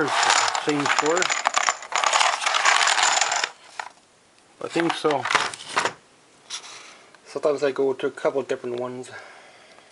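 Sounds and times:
game pieces rattling in a box: 0.0s - 3.9s.

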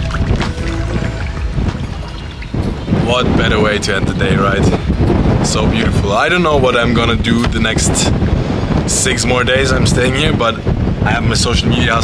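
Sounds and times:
background music: 0.0s - 4.2s
wind buffeting microphone: 0.0s - 12.0s.

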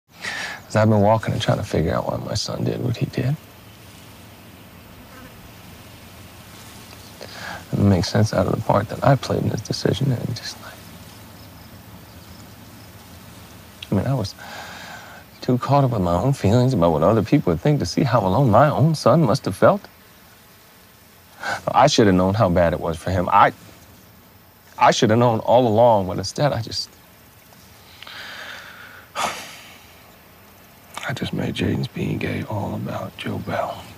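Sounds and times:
man gasping: 0.2s - 0.6s, 7.2s - 7.7s, 14.4s - 15.2s, 28.0s - 29.8s
man breathing shakily: 0.2s - 0.7s, 7.2s - 7.7s, 14.4s - 15.2s, 27.9s - 29.9s
faint low buzzing: 0.2s - 33.9s.

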